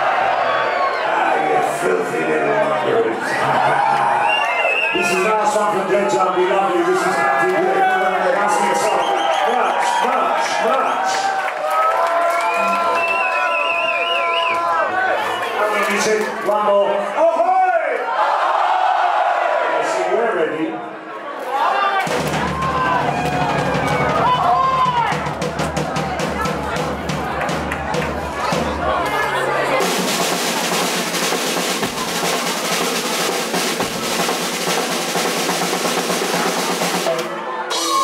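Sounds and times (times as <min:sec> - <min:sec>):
crowd cheering and whooping: 0:00.0 - 0:05.2, 0:06.7 - 0:15.7, 0:21.2 - 0:29.9, 0:37.1 - 0:38.0
drum hits: 0:22.0 - 0:38.0
reggae band playing: 0:22.3 - 0:38.0.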